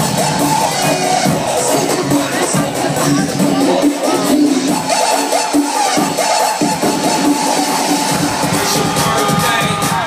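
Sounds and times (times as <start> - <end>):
loud dance club music: 0.0 - 10.0.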